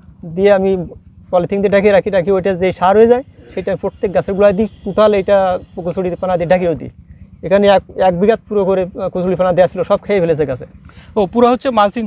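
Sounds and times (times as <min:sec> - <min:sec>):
man talking: 0:00.3 - 0:12.0.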